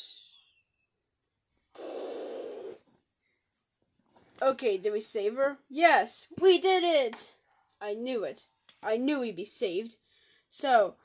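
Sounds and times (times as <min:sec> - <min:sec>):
breathy exhale: 0:01.7 - 0:02.9.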